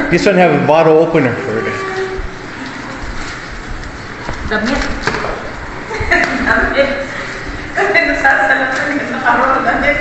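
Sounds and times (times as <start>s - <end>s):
plastic wrapping rustling: 0.8s - 10.0s.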